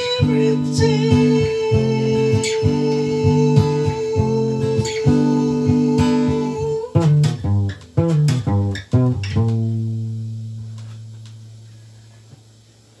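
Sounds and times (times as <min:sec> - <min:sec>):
ringing guitar chord: 0:00.0 - 0:11.8
acoustic guitar strumming and plucking: 0:00.0 - 0:11.9.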